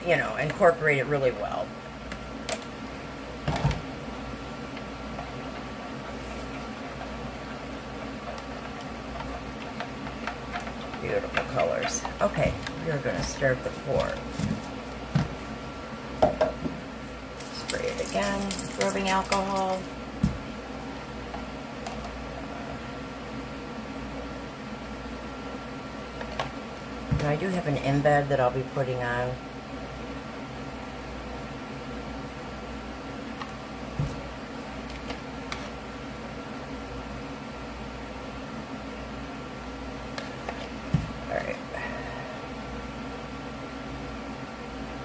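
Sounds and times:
steady mechanical hum: 0:00.0 - 0:45.0.

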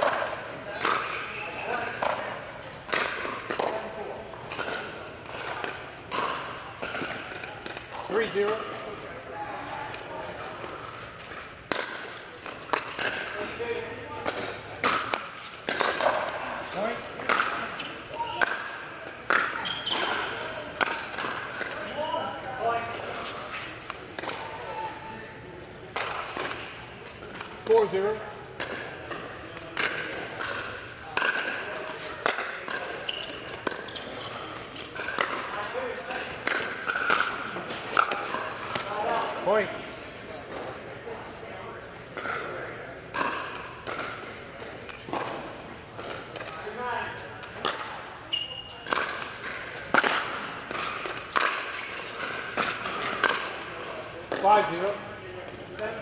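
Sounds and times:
ball bouncing on hard court: 0:26.0 - 0:34.2.

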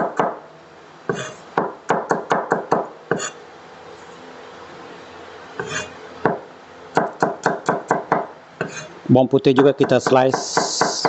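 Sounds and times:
cleaver cutting on wooden board: 0:05.6 - 0:05.9.

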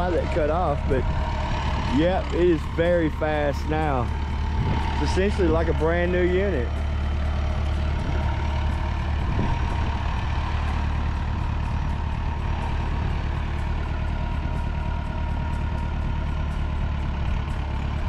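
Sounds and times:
tractor engine running: 0:00.0 - 0:18.0.

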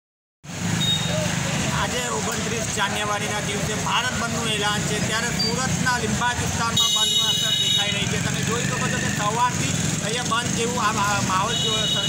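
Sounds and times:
street traffic: 0:00.4 - 0:12.0
people's voices: 0:01.0 - 0:12.0.

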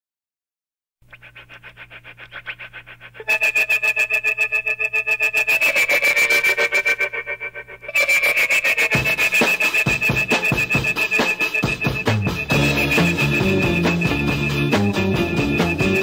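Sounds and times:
surf rock instrumental: 0:03.3 - 0:16.0
low beats: 0:09.0 - 0:16.0.

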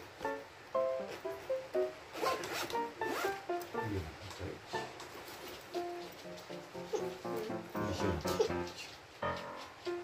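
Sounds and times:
light background music: 0:00.0 - 0:10.0
zipper pulled on a case: 0:02.2 - 0:03.3.

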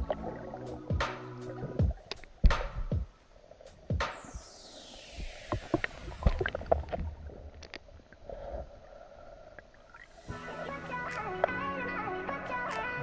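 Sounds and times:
underwater clicks and knocks: 0:00.0 - 0:03.1
low underwater rumble: 0:00.0 - 0:04.0, 0:05.0 - 0:12.2
high-pitched falling sweep: 0:04.1 - 0:06.9.

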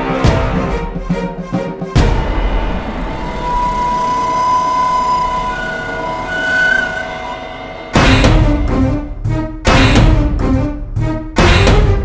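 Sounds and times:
film score drone: 0:02.0 - 0:09.1.

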